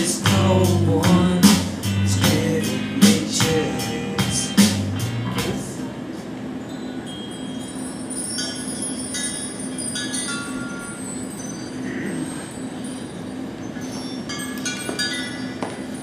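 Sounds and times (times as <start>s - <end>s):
low steady hum: 0.0s - 7.2s
chime-like ringing tones: 6.6s - 16.0s.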